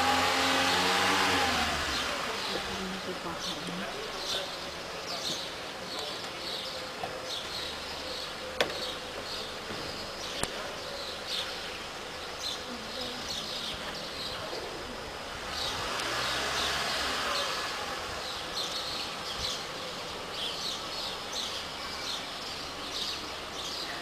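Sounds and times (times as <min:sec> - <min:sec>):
car engine: 0:00.0 - 0:24.0
small birds chirping: 0:00.6 - 0:24.0.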